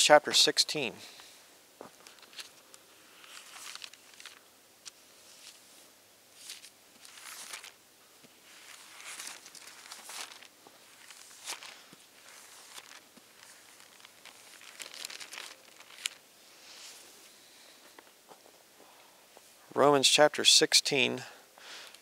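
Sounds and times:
book pages turning: 3.2 - 5.6, 6.4 - 7.8, 8.5 - 16.2.

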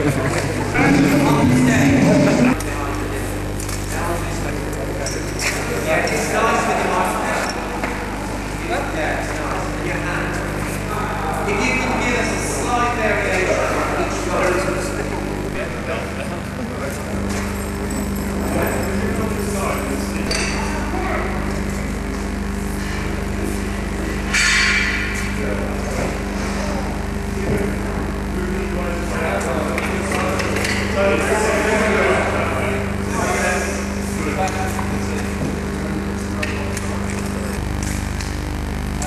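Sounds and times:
indistinct background voices: 0.0 - 24.3
electrical hum: 0.0 - 39.0.

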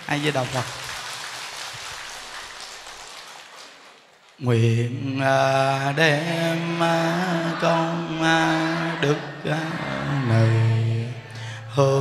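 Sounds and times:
audience applause: 0.0 - 4.3.

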